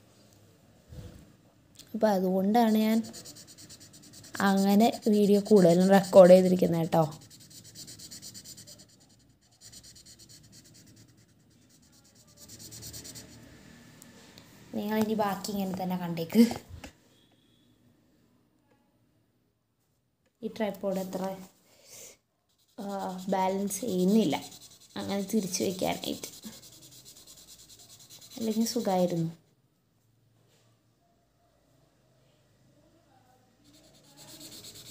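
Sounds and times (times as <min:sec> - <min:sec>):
marker scrubbing on paper: 0:02.6 - 0:13.6, 0:22.5 - 0:29.4, 0:33.6 - 0:34.9.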